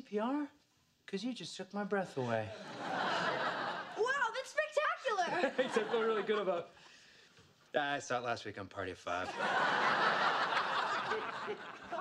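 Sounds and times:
studio audience laughing: 2.3 - 4.1, 5.3 - 6.7, 9.2 - 12.0.

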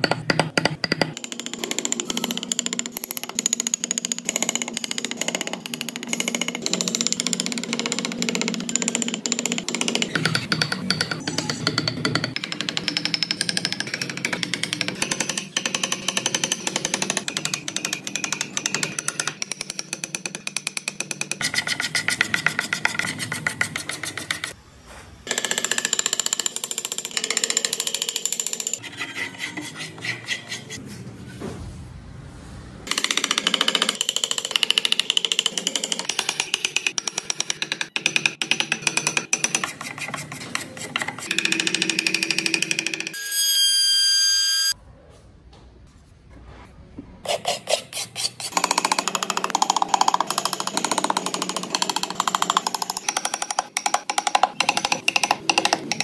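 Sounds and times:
chisel carving wood: 0.0 - 24.6, 25.3 - 30.8, 32.9 - 43.2, 47.3 - 56.0.

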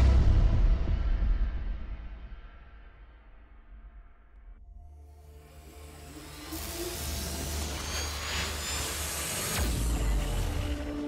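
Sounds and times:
deep boom: 0.0 - 2.6
ambient music: 0.0 - 11.0.

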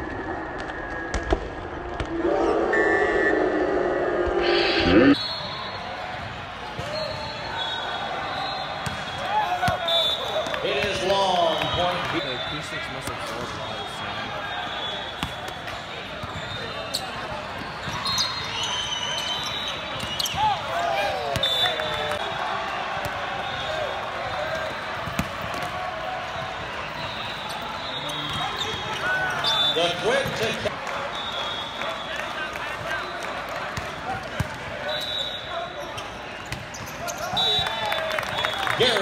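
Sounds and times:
loud volleyball hit: 8.8 - 9.8.

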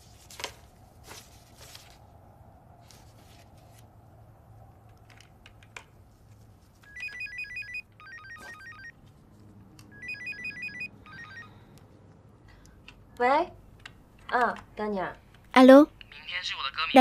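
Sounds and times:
phone electronic ringtone: 6.8 - 9.0, 9.9 - 11.7.

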